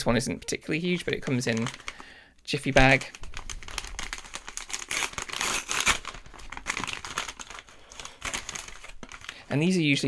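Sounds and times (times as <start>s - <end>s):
paper mailer crinkling and rustling: 0.8s - 2.0s, 2.6s - 9.4s.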